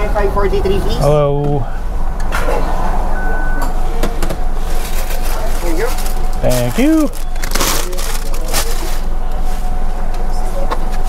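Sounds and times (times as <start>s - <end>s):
car engine idling: 0.0s - 11.0s
short high beep: 3.1s - 3.8s.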